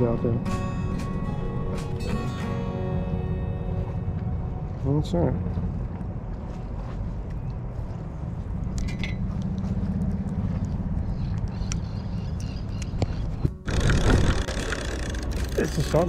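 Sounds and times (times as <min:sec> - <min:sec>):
low outdoor rumble: 0:00.0 - 0:16.0
fishing reel clicking: 0:13.7 - 0:15.6.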